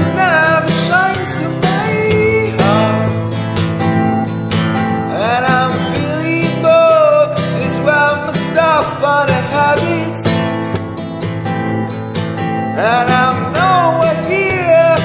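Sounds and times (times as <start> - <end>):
person singing: 0.0 - 3.6, 4.9 - 10.5, 12.6 - 15.0
acoustic guitar strumming chords: 0.0 - 15.0.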